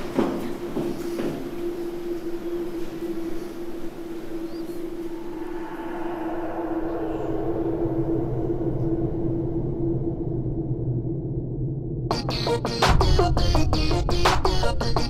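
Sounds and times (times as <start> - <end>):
elevator rushing rumble: 0.0 - 12.0
deeper hum: 0.0 - 15.0
elevator hum: 0.0 - 15.0.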